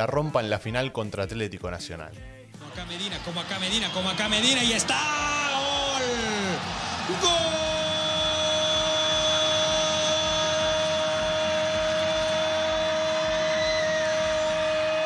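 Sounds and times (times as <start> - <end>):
commentator shouting goal: 2.6 - 13.5.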